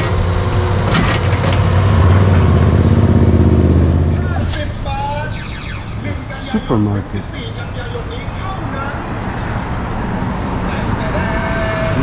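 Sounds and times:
vehicle engine running: 0.0s - 4.6s.

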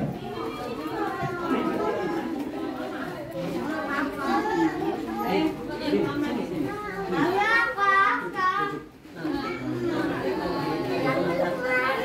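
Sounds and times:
people and children chattering: 0.0s - 12.0s.

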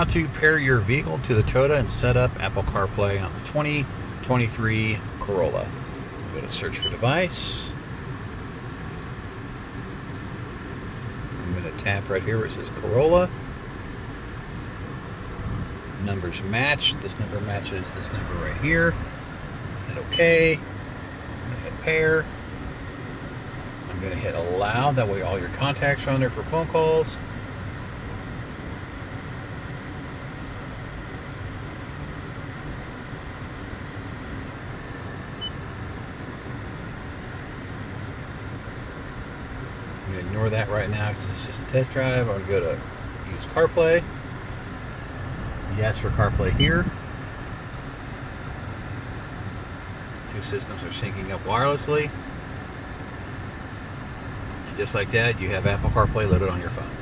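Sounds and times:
car fan humming and hissing: 0.0s - 57.0s
faint beep: 6.8s - 7.0s, 19.9s - 20.5s.

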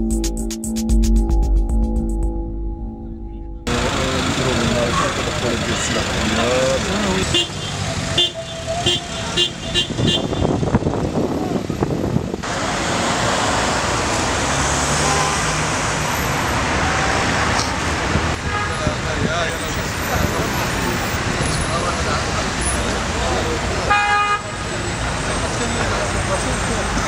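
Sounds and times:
background voices: 3.1s - 7.3s
traffic: 3.3s - 27.0s
car horn toot: 7.2s - 10.9s, 15.0s - 15.6s, 18.4s - 19.0s, 23.8s - 24.6s.

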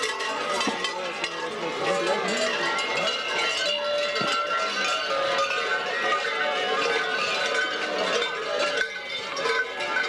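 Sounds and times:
large bells ringing: 0.0s - 10.0s.

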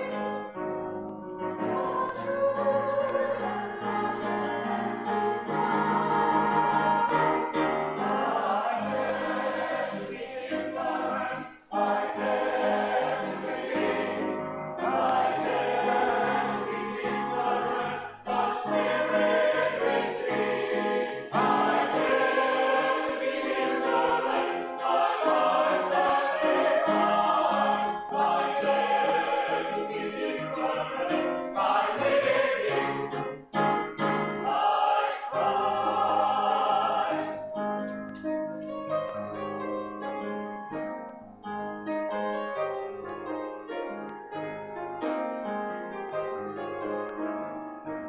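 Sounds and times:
mixed choir singing: 0.0s - 0.6s, 1.4s - 33.4s, 34.0s - 37.6s.

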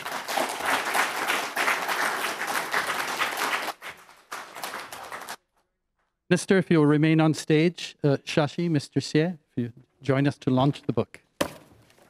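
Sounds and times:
audience applauding: 0.0s - 5.4s.

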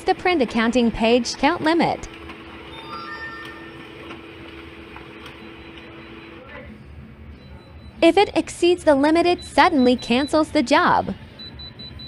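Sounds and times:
printer humming with ticks: 0.0s - 6.8s
printer high whine: 0.7s - 7.1s.

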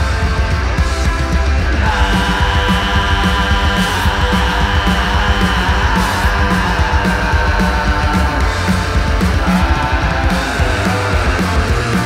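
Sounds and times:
distorted electric guitar: 0.0s - 12.0s
drum kit playing: 0.0s - 12.0s.

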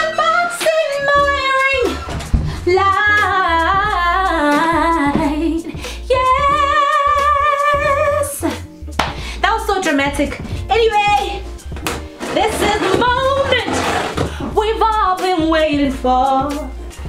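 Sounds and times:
woman singing playfully: 0.0s - 8.7s, 9.4s - 11.6s, 12.3s - 16.8s
background music with bass line: 0.0s - 17.0s.

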